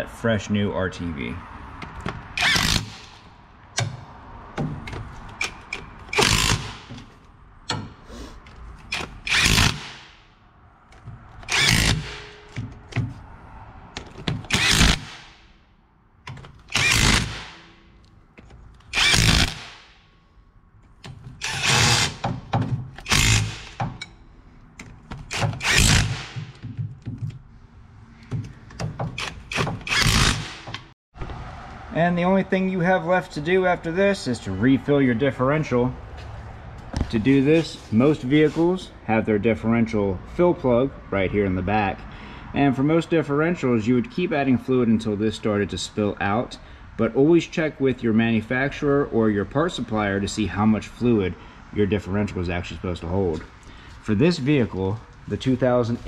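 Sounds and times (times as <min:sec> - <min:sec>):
impact driver bursts: 0:02.4 - 0:03.2, 0:05.4 - 0:06.9, 0:08.9 - 0:10.2, 0:11.4 - 0:12.5, 0:14.5 - 0:15.3, 0:16.7 - 0:17.8, 0:18.9 - 0:19.9, 0:21.4 - 0:22.4, 0:23.0 - 0:23.9, 0:25.2 - 0:26.5, 0:29.0 - 0:30.8
tool clicks and knocks: 0:24.8 - 0:27.4.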